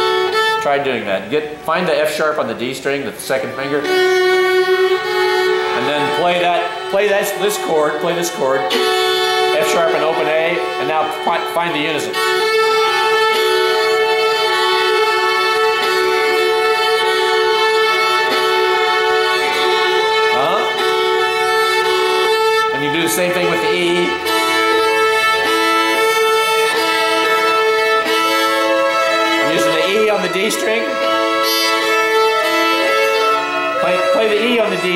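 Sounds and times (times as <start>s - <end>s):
fiddle playing double stops: 0.0s - 34.9s.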